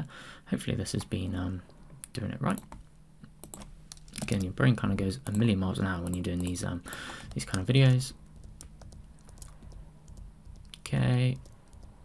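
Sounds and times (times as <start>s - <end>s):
low steady hum: 0.0s - 12.0s
computer keys clicking: 3.4s - 12.0s.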